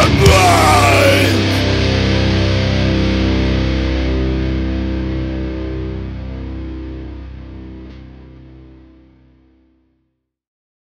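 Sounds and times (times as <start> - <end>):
distorted electric guitar chord ringing: 0.0 - 10.0.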